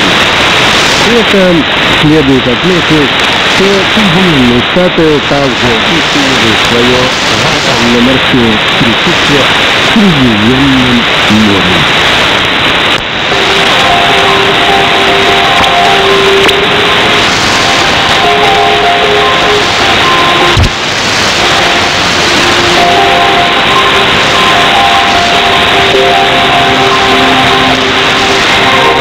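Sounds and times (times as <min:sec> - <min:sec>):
music over radio: 0:00.0 - 0:12.2, 0:12.9 - 0:29.0
radio static hiss: 0:00.0 - 0:29.0.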